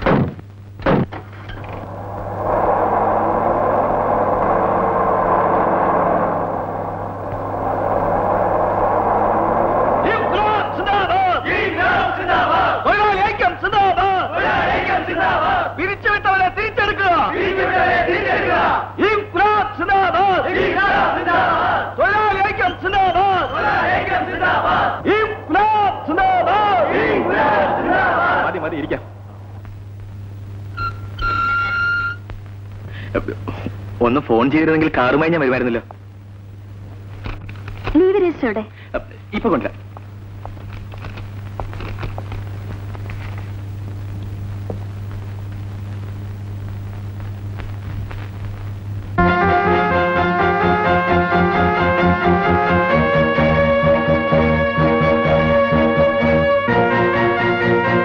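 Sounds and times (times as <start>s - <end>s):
constant low hum: 0.0s - 13.3s, 22.9s - 57.8s
high-pitched whistle-like tone: 1.5s - 11.8s, 30.8s - 32.2s
jeep engine driving: 1.6s - 12.0s.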